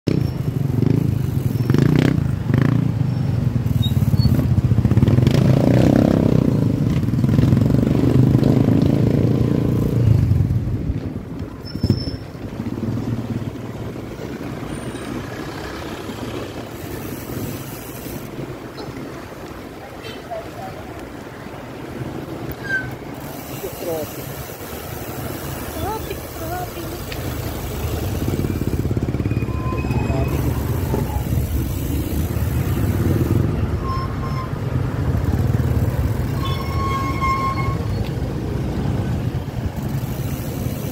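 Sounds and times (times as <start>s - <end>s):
traffic hum: 0.0s - 40.9s
motorcycle engine running: 25.0s - 29.5s.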